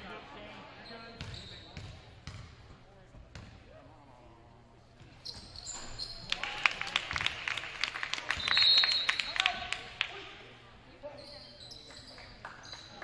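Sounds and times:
sneakers squeaking on court: 0:00.8 - 0:02.6, 0:05.0 - 0:06.3
basketball bouncing: 0:01.2 - 0:02.5.

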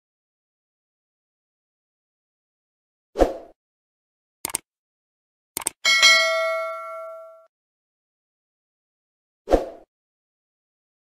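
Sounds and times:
bright bell ding: 0:05.8 - 0:07.5.

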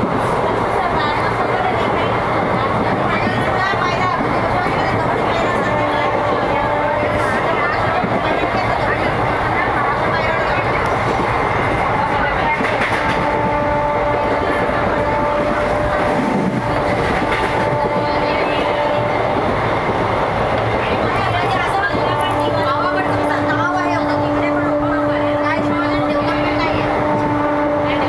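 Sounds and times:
train carriage rumbling and rattling: 0:00.0 - 0:28.0.

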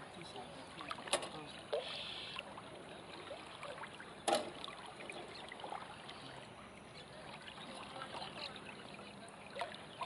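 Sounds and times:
river water flowing: 0:00.0 - 0:10.0.

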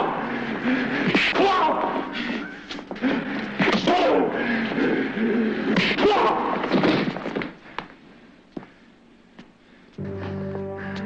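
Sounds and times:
loud scuffle: 0:05.7 - 0:08.0.

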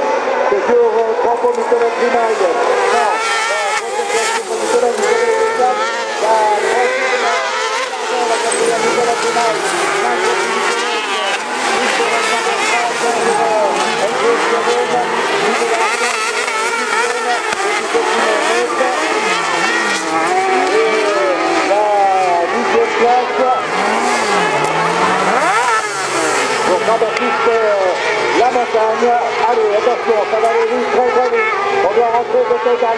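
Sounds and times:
racing buggy engines revving: 0:00.0 - 0:32.9.

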